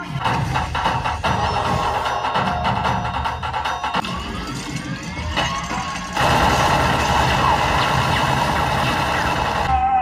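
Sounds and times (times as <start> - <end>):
film soundtrack music: 0.0 - 10.0
automatic gunfire: 6.2 - 9.7.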